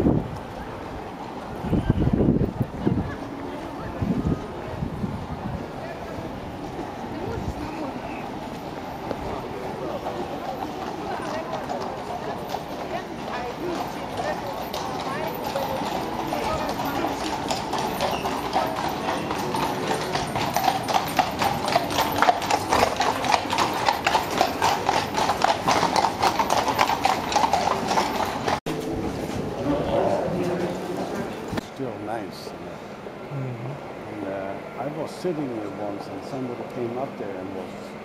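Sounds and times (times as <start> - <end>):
horse hooves on cobblestones: 0.0 - 31.7
people chattering: 0.0 - 38.0.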